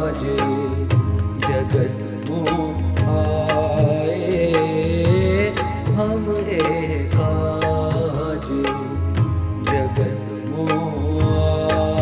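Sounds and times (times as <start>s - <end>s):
devotional music melody: 0.0s - 12.0s
steady bass: 0.0s - 12.0s.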